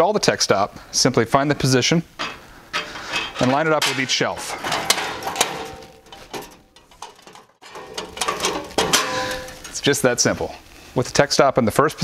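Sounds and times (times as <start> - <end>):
metal bar knocking and rattling: 2.2 - 9.8.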